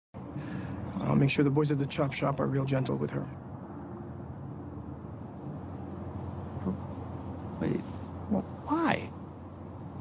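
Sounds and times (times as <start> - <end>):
low outdoor background rumble: 0.2 - 10.0.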